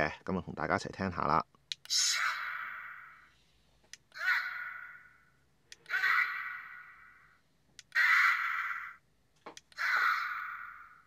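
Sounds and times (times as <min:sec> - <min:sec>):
toy speaker playing shouts: 0:04.1 - 0:05.2, 0:05.8 - 0:09.0, 0:09.7 - 0:11.0.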